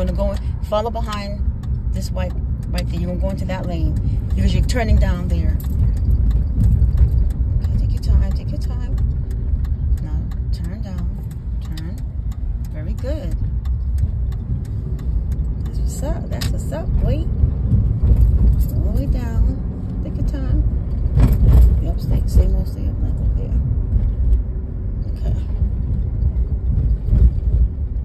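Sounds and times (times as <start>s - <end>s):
engine and road rumble: 0.0s - 28.0s
light regular ticking: 0.0s - 28.0s.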